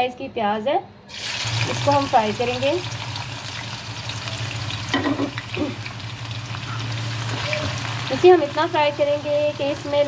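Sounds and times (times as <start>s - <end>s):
onion sizzling in hot oil: 1.1s - 10.0s.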